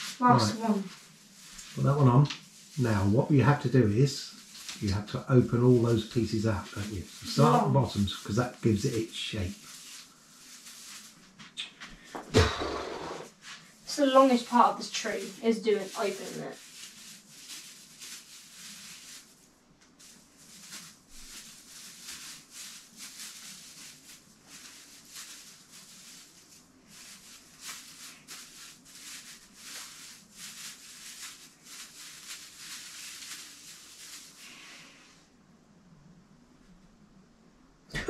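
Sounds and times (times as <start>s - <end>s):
plastic branches rustling: 0.0s - 35.0s.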